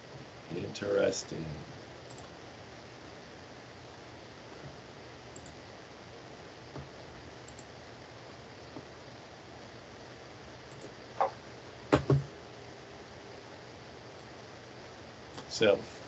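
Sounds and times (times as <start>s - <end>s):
faint room hiss: 0.0s - 16.0s
computer mouse clicks: 2.1s - 2.3s, 5.3s - 5.6s, 7.4s - 7.7s.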